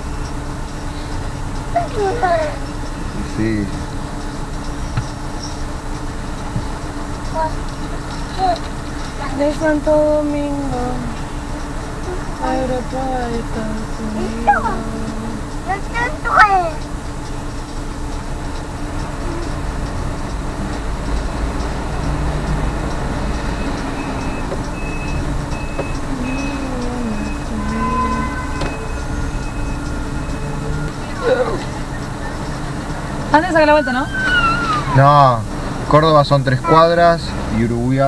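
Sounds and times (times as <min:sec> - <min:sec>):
car engine idling: 0:00.0 - 0:38.0
street traffic: 0:00.0 - 0:38.0.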